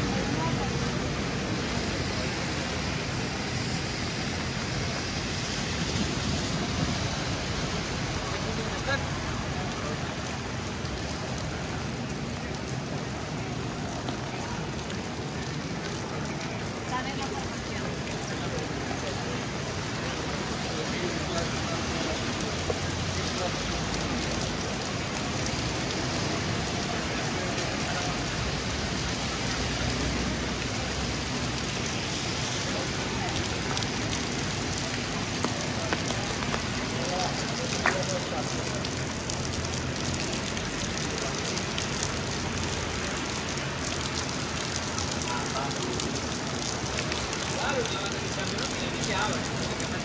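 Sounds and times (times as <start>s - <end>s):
people's voices: 0.0s - 3.1s, 6.5s - 50.0s
rain on wet street: 0.0s - 50.0s
traffic: 0.0s - 50.0s
small drips and clicks: 7.5s - 50.0s.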